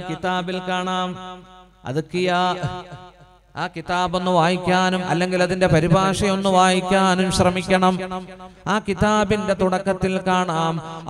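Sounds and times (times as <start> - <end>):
man chanting through microphone: 0.0 - 11.0.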